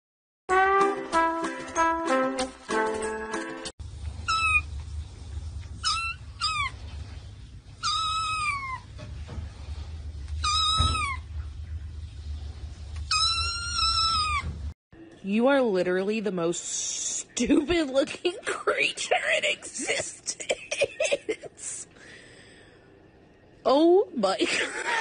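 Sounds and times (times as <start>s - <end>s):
brass music: 0.5s - 3.7s
kitten meowing: 5.8s - 6.8s, 7.8s - 8.8s, 10.4s - 11.2s, 13.1s - 14.5s.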